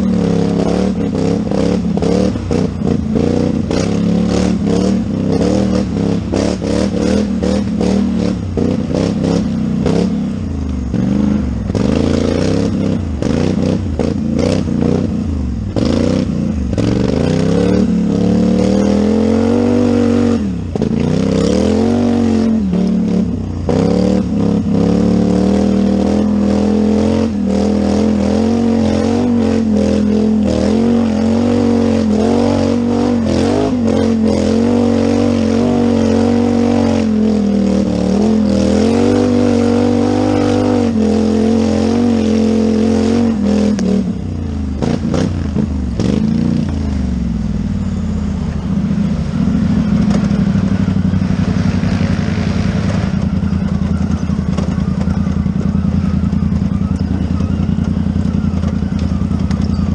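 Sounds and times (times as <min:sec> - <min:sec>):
atv engine revving: 0:00.0 - 0:59.9
vehicle clattering over bumps: 0:49.3 - 0:59.9.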